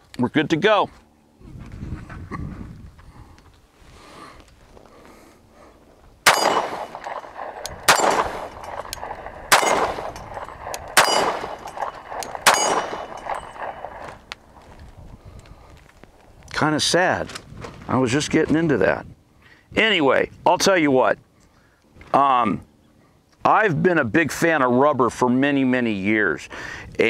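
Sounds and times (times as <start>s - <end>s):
pistol shots with ringing tail: 6.2s - 14.3s.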